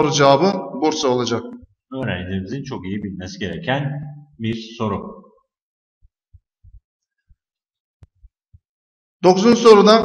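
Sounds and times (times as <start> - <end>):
faint low thumps: 0.0 - 5.2, 6.0 - 7.4.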